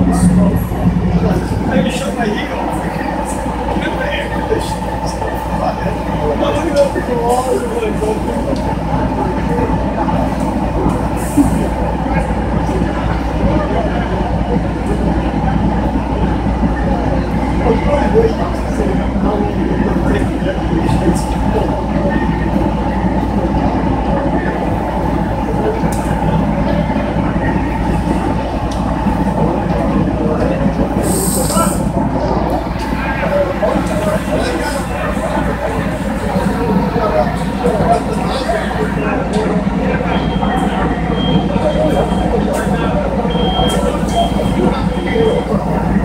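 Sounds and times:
diesel engine rumbling: 0.0 - 46.0
faint voices: 0.0 - 46.0.

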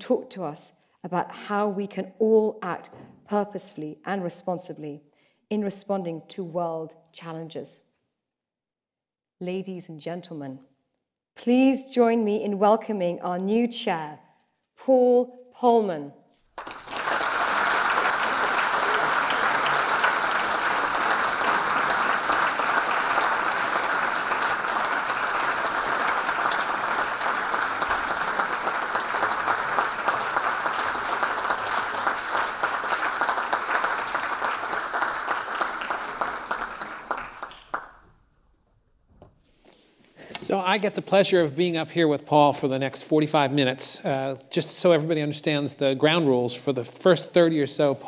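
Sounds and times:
audience applauding: 16.5 - 38.0.

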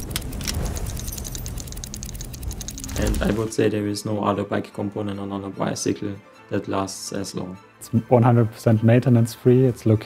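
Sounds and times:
faint clicking: 0.0 - 3.3.

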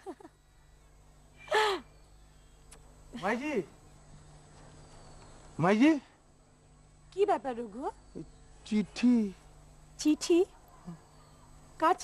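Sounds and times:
faint click: 2.7 - 2.9.

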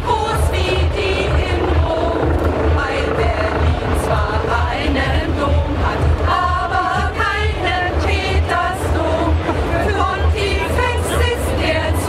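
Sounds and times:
group of voices singing: 0.0 - 12.0
helicopter rotor drone: 0.0 - 12.0.

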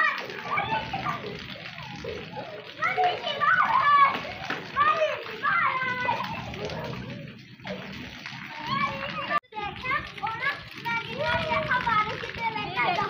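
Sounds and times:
girls and woman shouting excitedly: 0.0 - 1.3, 2.4 - 6.6.

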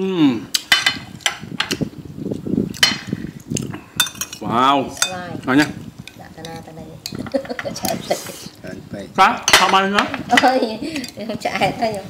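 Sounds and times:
cutlery clinking against plates: 0.5 - 1.8, 2.7 - 3.1, 4.0 - 8.0, 9.4 - 11.2
people talking: 4.4 - 12.0.

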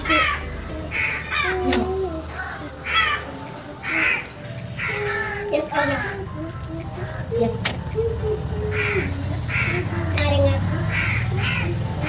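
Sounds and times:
crow cawing: 0.0 - 12.0.

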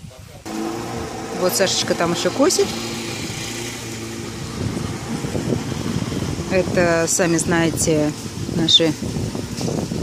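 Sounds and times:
lawn mower engine running: 0.5 - 10.0.

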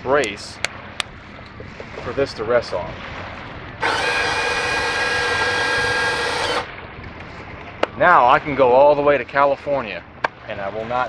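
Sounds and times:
electric pump whine: 3.8 - 6.7.

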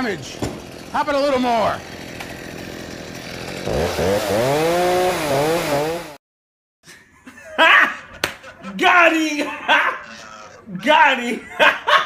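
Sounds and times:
chainsaw running and revving: 0.0 - 6.2.

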